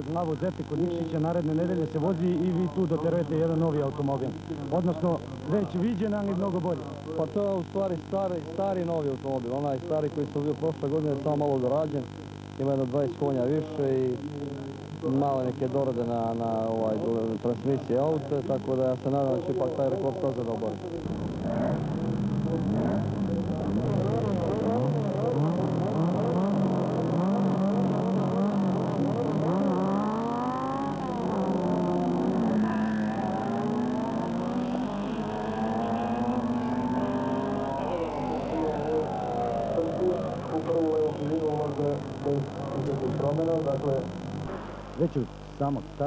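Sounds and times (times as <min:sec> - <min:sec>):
racing car engines revving: 0:19.4 - 0:44.6.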